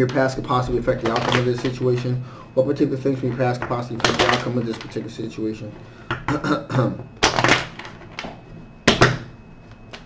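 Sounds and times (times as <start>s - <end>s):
man clearing his throat: 6.2s - 7.1s.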